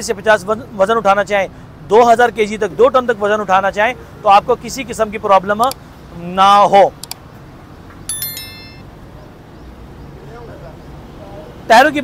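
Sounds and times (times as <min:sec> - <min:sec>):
bright high chime: 0:08.1 - 0:09.0.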